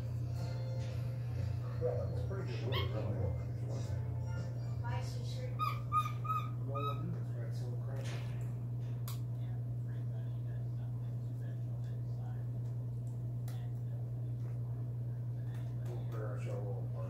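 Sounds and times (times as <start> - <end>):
monkey high calls: 2.7 - 3.0, 5.6 - 7.2.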